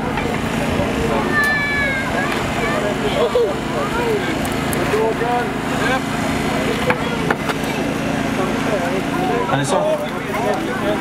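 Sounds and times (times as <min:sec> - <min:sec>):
hydraulic power unit humming: 0:00.0 - 0:11.0.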